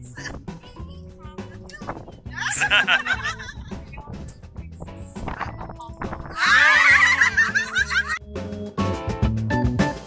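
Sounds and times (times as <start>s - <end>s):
background music: 0.0s - 10.0s
woman laughing high-pitched: 2.4s - 3.8s, 6.4s - 8.2s.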